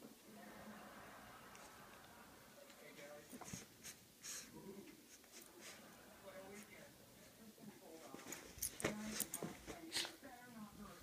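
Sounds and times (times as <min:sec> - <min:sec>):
soft rustling: 0:02.7 - 0:11.0.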